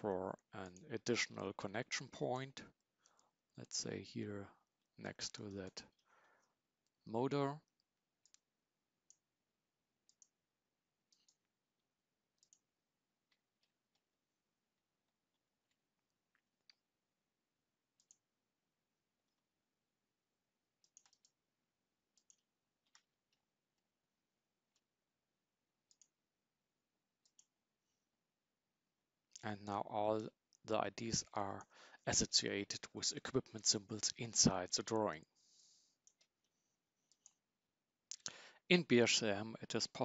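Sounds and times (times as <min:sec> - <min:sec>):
computer mouse clicks: 0:07.7 - 0:08.5, 0:10.0 - 0:10.4, 0:11.1 - 0:11.5, 0:12.4 - 0:12.6, 0:18.0 - 0:18.2, 0:20.8 - 0:21.4, 0:22.2 - 0:23.1, 0:25.9 - 0:26.1, 0:27.2 - 0:27.5, 0:36.0 - 0:37.4.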